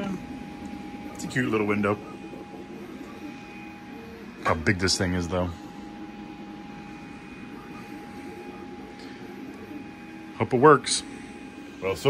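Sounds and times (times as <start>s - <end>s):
machine hum: 0.0s - 12.0s
thin steady whine: 0.0s - 12.0s.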